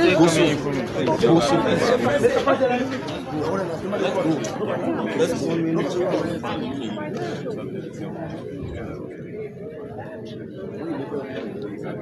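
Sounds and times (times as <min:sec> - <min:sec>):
overlapping indistinct voices: 0:00.0 - 0:12.0.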